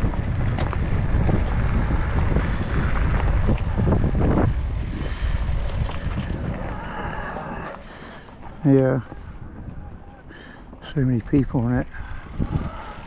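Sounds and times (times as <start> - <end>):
wind rushing over microphone: 0.0 - 10.3, 11.0 - 13.0
tyres crackling over gravel: 0.0 - 13.0.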